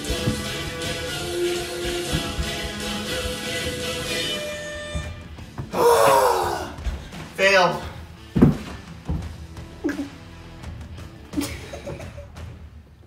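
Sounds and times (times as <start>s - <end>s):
background music: 0.0s - 13.0s
man crying out: 5.7s - 6.8s
body thumping onto carpeted floor: 8.3s - 9.4s.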